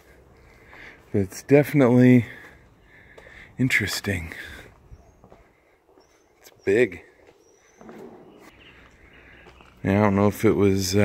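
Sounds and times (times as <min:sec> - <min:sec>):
outdoor background noise: 0:00.0 - 0:11.0
man speaking: 0:01.1 - 0:02.4, 0:03.6 - 0:04.6, 0:06.5 - 0:07.0, 0:09.8 - 0:11.0.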